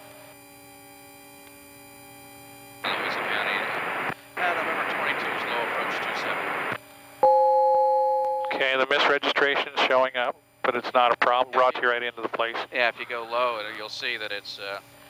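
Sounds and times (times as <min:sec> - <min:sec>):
rushing radio noise: 0:02.8 - 0:06.8, 0:08.5 - 0:13.3
intercom hum: 0:02.8 - 0:13.4
two-note tone: 0:07.2 - 0:08.7.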